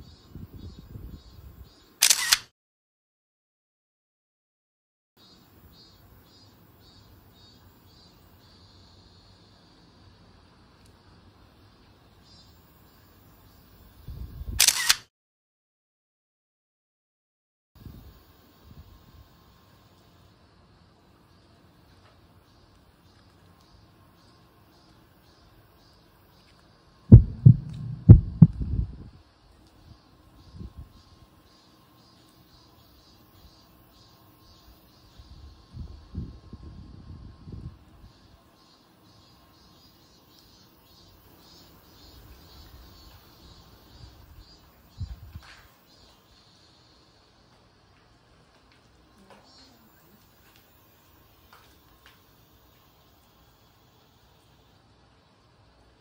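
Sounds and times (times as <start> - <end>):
camera shutter double click: 2.0 - 2.5, 14.5 - 15.1
recording device handling noise: 2.0 - 2.5, 26.4 - 28.8
faint low rumble: 27.0 - 31.1
heartbeat thumps: 27.1 - 29.0
low bumps: 27.1 - 29.0.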